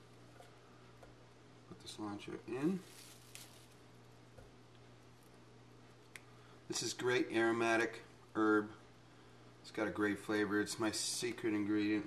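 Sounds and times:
low steady hum: 0.0s - 12.0s
faint rustle: 2.7s - 3.9s.

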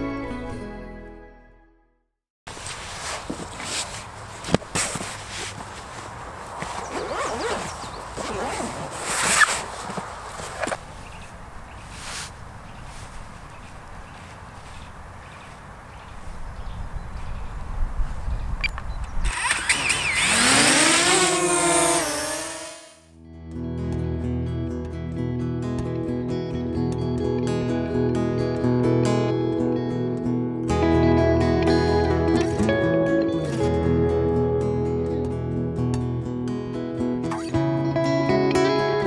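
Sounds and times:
outdoor background noise: 2.5s - 39.0s
bird chirping: 6.7s - 8.8s, 10.8s - 20.2s
drone propellers whirring: 19.1s - 23.1s.

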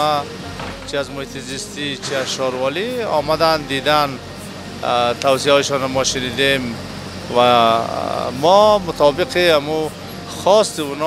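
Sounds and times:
low machine hum: 0.0s - 11.0s
man speaking: 0.9s - 4.2s, 4.8s - 11.0s.

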